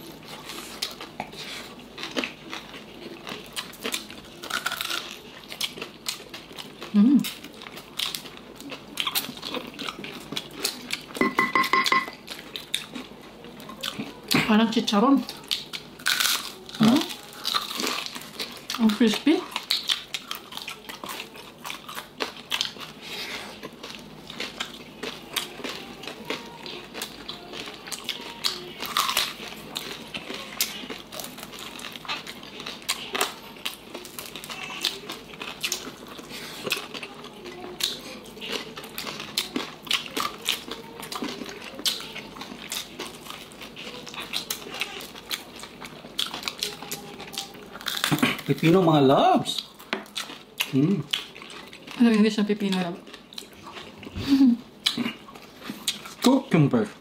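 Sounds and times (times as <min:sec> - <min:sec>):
crispy skin crunching when chewed: 0:00.0 - 0:11.2, 0:15.2 - 0:56.4.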